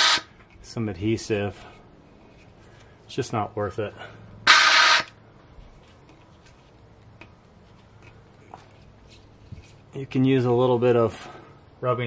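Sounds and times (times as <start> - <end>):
steam cleaner hissing: 0.0 - 0.2.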